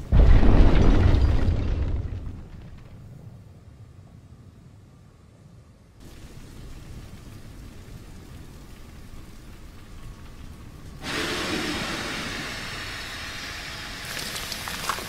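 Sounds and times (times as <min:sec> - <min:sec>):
sharp crackles: 0:00.0 - 0:03.6, 0:06.0 - 0:11.0, 0:14.0 - 0:15.0
loud rushing hiss: 0:11.0 - 0:15.0.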